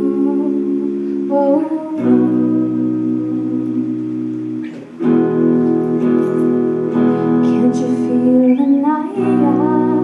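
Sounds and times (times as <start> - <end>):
electric guitar chords: 0.0 - 10.0.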